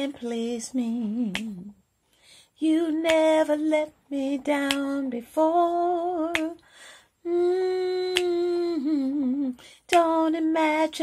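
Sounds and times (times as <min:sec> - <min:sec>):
woman singing with vibrato: 0:00.0 - 0:01.9, 0:02.6 - 0:11.0
woman breathing in: 0:02.0 - 0:02.6, 0:06.6 - 0:07.2.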